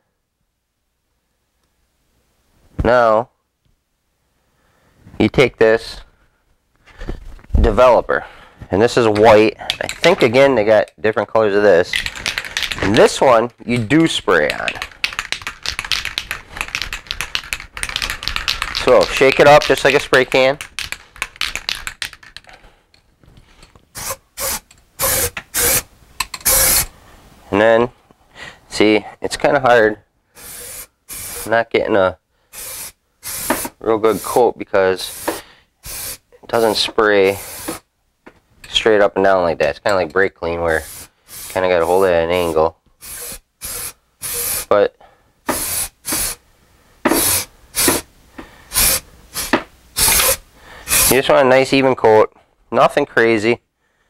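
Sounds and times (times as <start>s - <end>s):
aerosol can mixing ball rattling: 9.2s - 10.8s, 11.8s - 22.6s, 23.9s - 26.9s, 32.6s - 34.4s, 35.0s - 37.8s, 40.7s - 44.7s, 45.5s - 46.4s, 47.1s - 48.1s, 48.7s - 51.3s
aerosol spray hissing: 14.6s - 21.9s, 24.0s - 26.9s, 30.4s - 31.5s, 32.5s - 34.4s, 35.0s - 37.8s, 40.7s - 44.7s, 45.5s - 46.4s, 47.1s - 48.1s, 48.7s - 51.2s.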